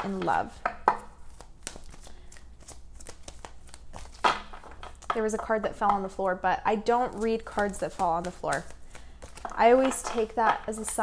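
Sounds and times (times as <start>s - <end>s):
cards being shuffled: 0.0s - 5.1s, 6.8s - 11.0s.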